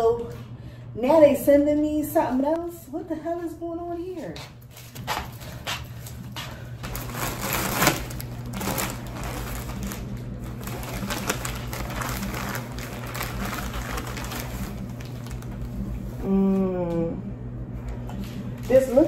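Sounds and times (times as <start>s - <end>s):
low hum: 4.6s - 19.0s
plastic bag crinkling and tearing: 6.8s - 16.2s.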